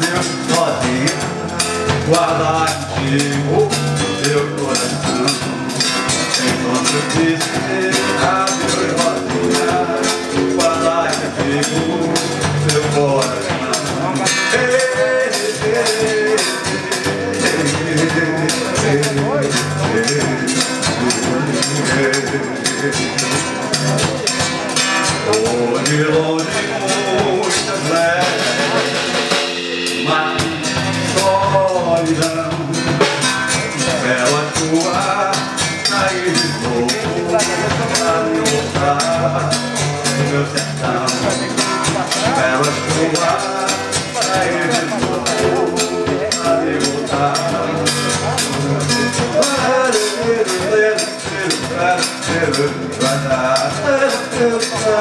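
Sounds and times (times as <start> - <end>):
electric bass: 0.0 - 55.0
nylon-string acoustic guitar: 0.0 - 55.0
steady percussion: 0.0 - 55.0.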